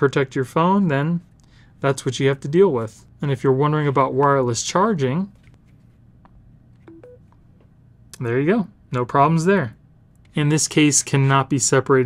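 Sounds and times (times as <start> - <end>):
two-tone charging beeps: 6.9 - 7.3
phone tapping on charging pad: 6.9 - 7.4.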